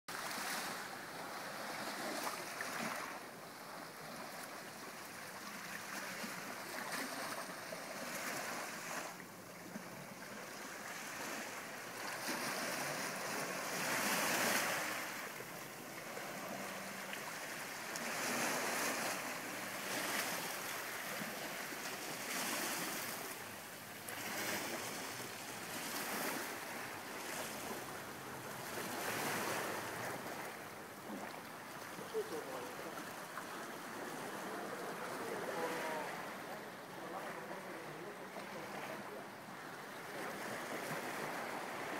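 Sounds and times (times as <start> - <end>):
sea waves washing onto sand: 0.1 - 41.9.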